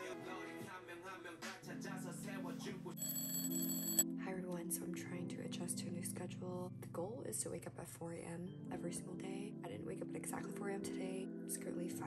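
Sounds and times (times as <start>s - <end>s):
background music: 0.0s - 12.0s
electronic alarm tone: 3.0s - 4.0s.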